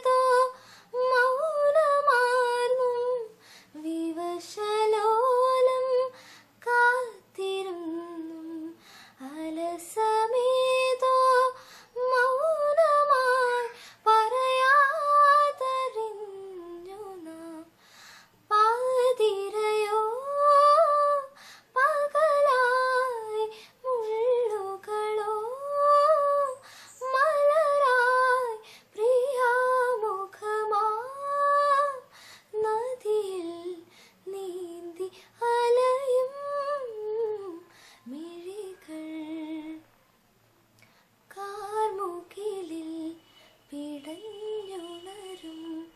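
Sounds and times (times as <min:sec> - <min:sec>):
woman singing unaccompanied: 0:00.0 - 0:17.8, 0:18.5 - 0:39.9, 0:41.3 - 0:45.9
singer breathing: 0:00.6 - 0:00.9, 0:03.4 - 0:03.8, 0:06.1 - 0:06.6, 0:08.8 - 0:09.2, 0:11.6 - 0:12.0, 0:13.8 - 0:14.1, 0:17.8 - 0:18.4, 0:21.4 - 0:21.8, 0:26.6 - 0:27.0, 0:28.6 - 0:29.0, 0:32.1 - 0:32.6, 0:33.8 - 0:34.2, 0:37.6 - 0:38.1.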